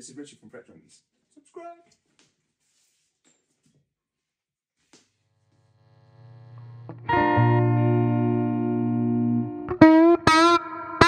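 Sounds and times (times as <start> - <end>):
clean electric guitar chord ringing: 6.2 - 11.0.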